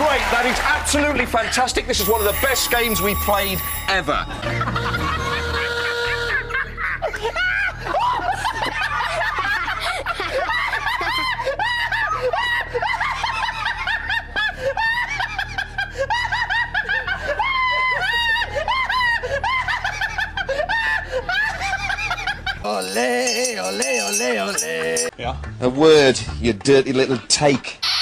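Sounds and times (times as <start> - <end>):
people laughing: 0.0 - 25.1.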